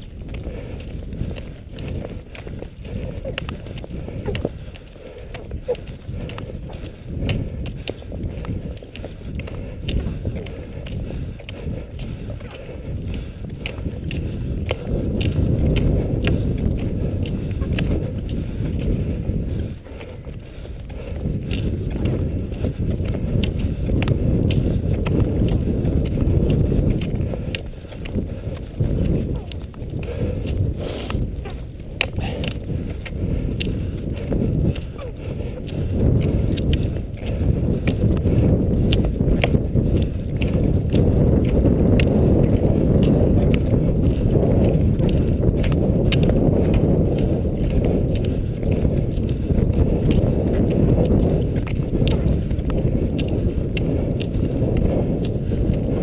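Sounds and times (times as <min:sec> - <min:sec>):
wind on microphone: 0:00.0 - 0:56.0
skis sliding over snow: 0:20.9 - 0:56.0.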